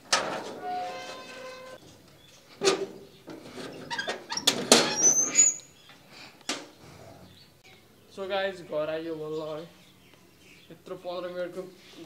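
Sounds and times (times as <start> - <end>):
metal gate knocks and rattles: 0.0 - 2.0, 2.6 - 5.6
short high squeak: 0.6 - 1.8, 3.9 - 5.8.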